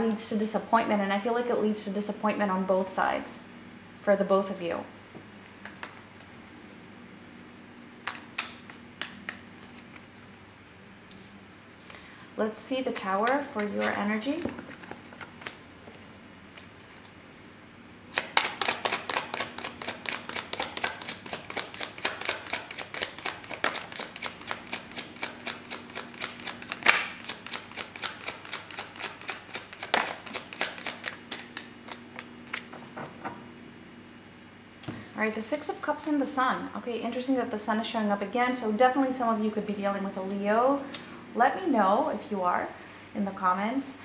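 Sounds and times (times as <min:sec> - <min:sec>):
cards being shuffled: 0:05.5 - 0:06.8, 0:08.0 - 0:10.6, 0:12.8 - 0:17.5, 0:18.1 - 0:33.2.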